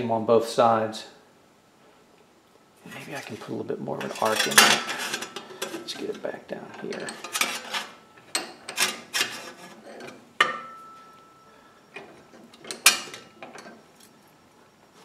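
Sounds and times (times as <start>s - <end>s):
sheet metal clattering and scraping: 4.0s - 6.2s, 6.8s - 10.8s
vise handle being worked: 6.9s - 10.7s.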